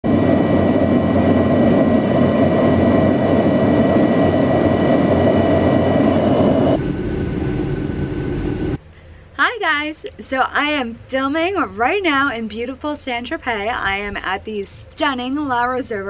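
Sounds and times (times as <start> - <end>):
jet engine and airflow roar: 0.0 - 8.8
dull cabin hum: 0.0 - 16.0.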